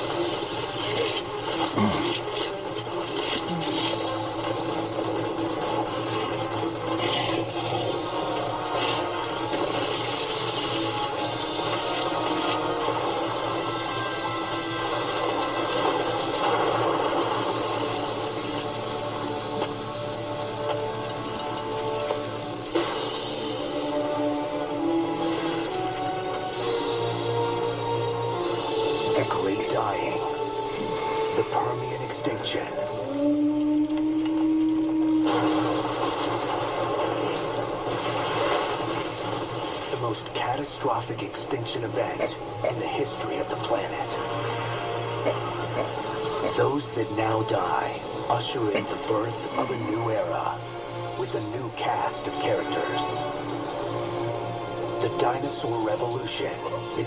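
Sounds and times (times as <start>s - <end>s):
steady rushing noise: 0.0s - 57.0s
tv soundtrack music and effects: 0.0s - 57.0s.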